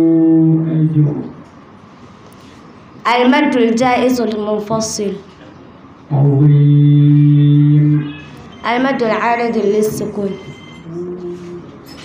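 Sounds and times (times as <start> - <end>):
electronic buzzer tone: 10.2 - 10.9.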